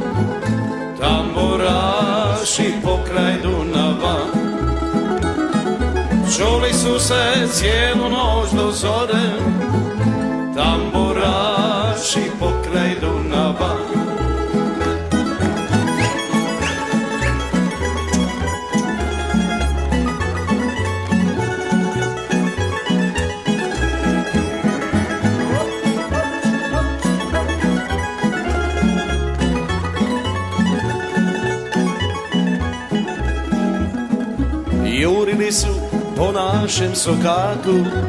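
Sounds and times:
plucked string band playing: 0.0s - 38.0s.

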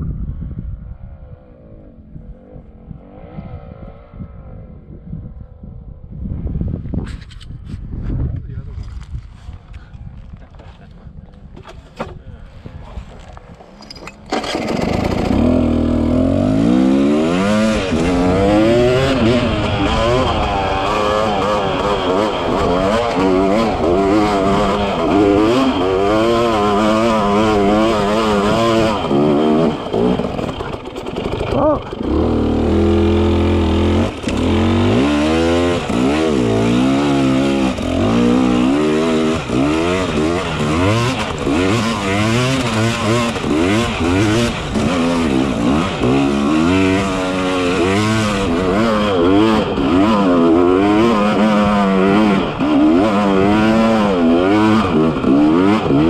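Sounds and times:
off-road motorcycle engine revving: 13.1s - 56.0s.

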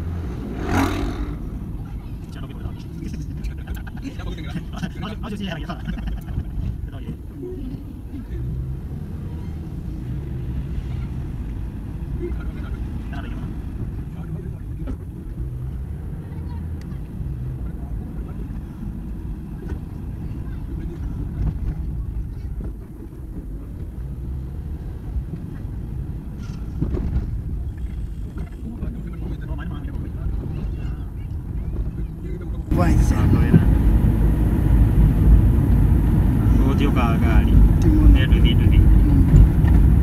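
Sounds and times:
car engine and road rumble: 0.0s - 40.0s.

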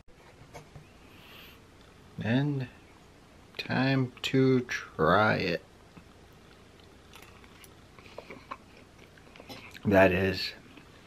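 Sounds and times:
person chewing food: 5.9s - 9.9s.

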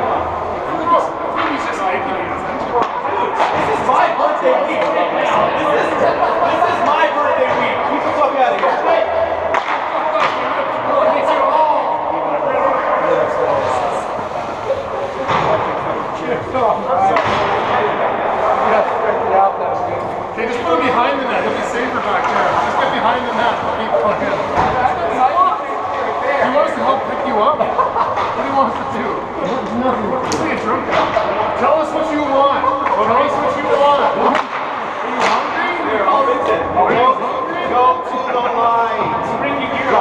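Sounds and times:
players' voices echoing in rink: 0.0s - 40.0s.

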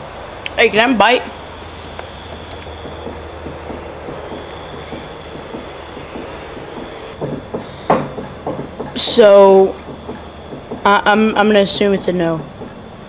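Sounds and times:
low hum and hiss: 0.0s - 13.0s.

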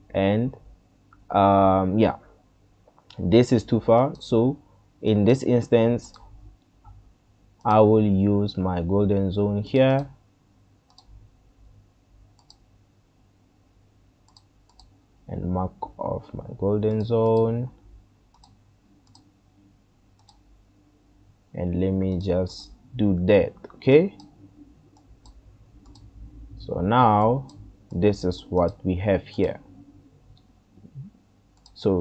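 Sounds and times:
low background hum: 0.0s - 32.0s
computer mouse clicks: 6.0s - 7.0s, 10.9s - 11.2s, 12.4s - 12.6s, 14.3s - 15.0s, 18.3s - 19.3s, 20.2s - 20.5s, 23.6s - 26.1s, 31.5s - 31.8s.

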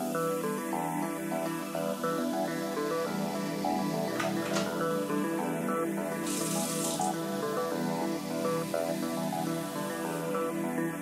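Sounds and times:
background music: 0.0s - 11.0s
tap water running into bottle: 6.2s - 7.1s.

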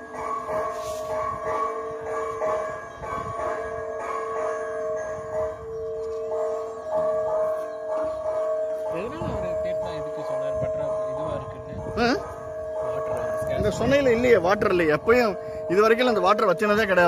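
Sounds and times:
temple bell ringing: 0.0s - 17.0s.

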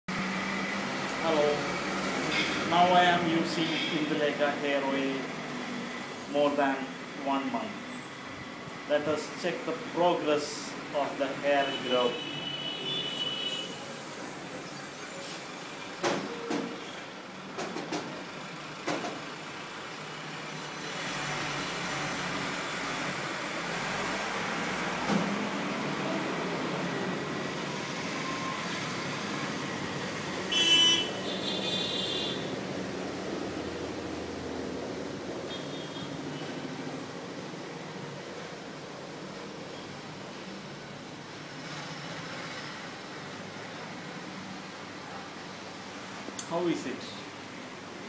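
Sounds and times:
road traffic noise: 0.1s - 48.0s.

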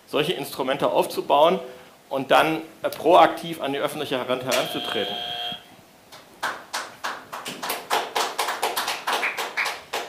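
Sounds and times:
scattered audience applause: 6.4s - 10.0s.

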